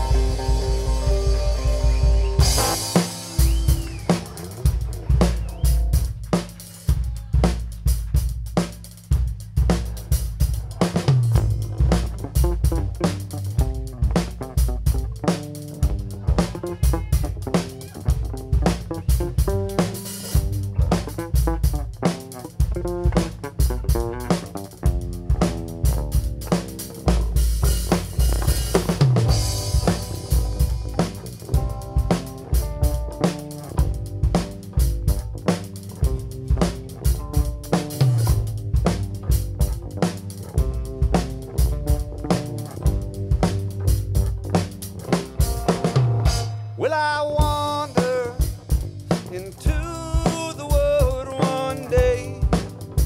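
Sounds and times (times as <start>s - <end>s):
cymbals wash: 0.0s - 6.9s
folk-rock band playing live: 0.0s - 53.0s.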